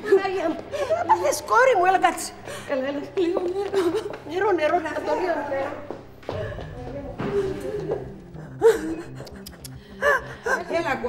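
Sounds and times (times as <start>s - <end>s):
background music with low notes: 0.0s - 11.0s
person gasping: 6.3s - 10.8s.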